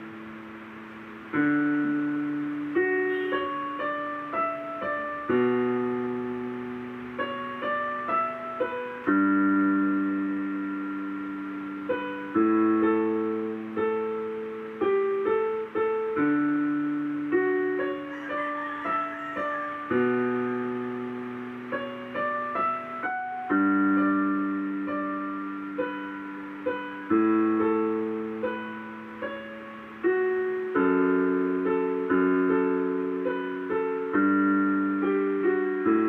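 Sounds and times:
digital piano chord: 0.0s - 36.0s.

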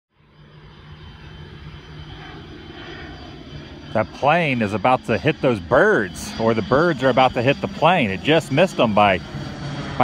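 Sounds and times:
airplane engine drone overhead: 0.1s - 10.0s.

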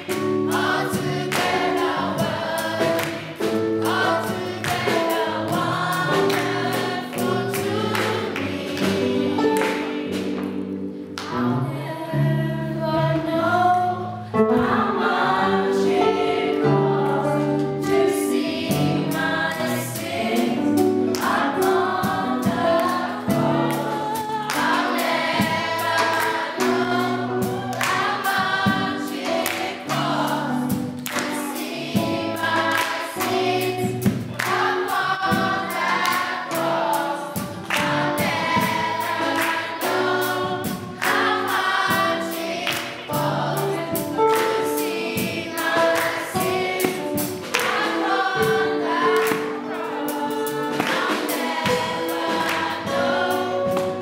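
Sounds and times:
live band with drums and bass: 0.0s - 11.0s, 16.8s - 54.0s
children's choir singing gospel: 0.0s - 54.0s
hand claps: 0.1s - 2.0s, 2.8s - 11.4s, 21.1s - 21.4s, 23.7s - 27.0s, 27.7s - 31.7s, 32.4s - 33.4s, 34.0s - 34.9s, 35.8s - 36.5s, 37.6s - 38.2s, 39.3s - 40.4s, 41.0s - 41.7s, 42.6s - 43.0s, 44.3s - 45.0s, 45.7s - 48.0s, 49.1s - 49.6s, 50.8s - 51.8s.

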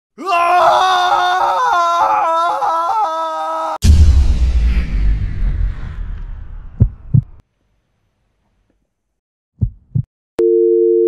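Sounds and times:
person screaming: 0.2s - 3.8s
deep low rumble: 3.8s - 7.4s.

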